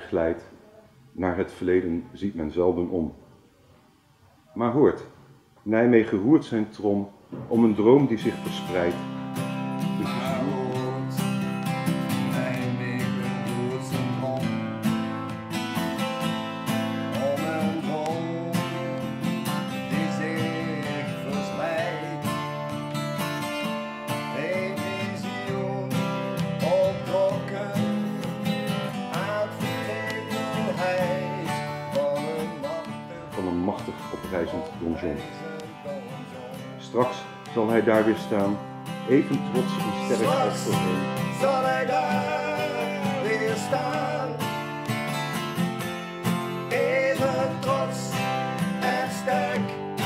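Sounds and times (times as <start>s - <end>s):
acoustic guitars playing: 7.3s - 50.0s.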